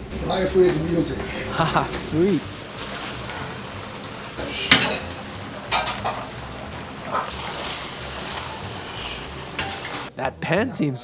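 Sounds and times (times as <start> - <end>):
sauce sizzling in a wok: 1.2 - 10.1
ladle scraping and clinking on wok: 9.2 - 10.1.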